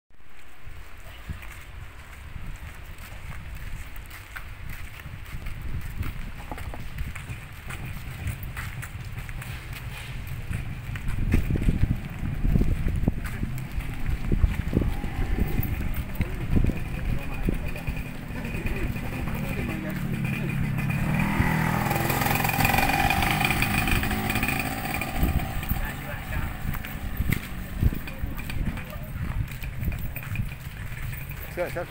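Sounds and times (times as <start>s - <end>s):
motorcycle engines running: 1.3s - 31.9s
people talking indistinctly: 13.2s - 21.2s, 25.2s - 29.6s.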